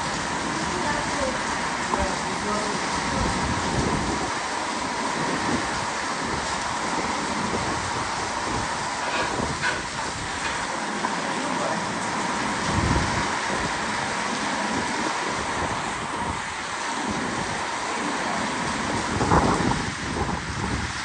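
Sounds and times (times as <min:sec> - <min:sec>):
heavy rain on a roof: 0:00.0 - 0:21.0.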